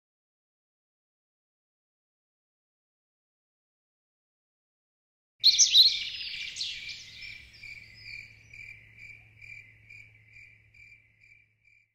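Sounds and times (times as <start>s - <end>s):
bird chirps: 5.4s - 11.9s
high cricket-like chirp: 5.4s - 11.9s.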